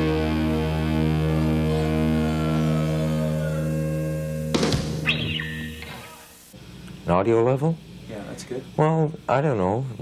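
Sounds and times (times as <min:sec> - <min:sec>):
distorted electric guitar chord: 0:00.0 - 0:06.3.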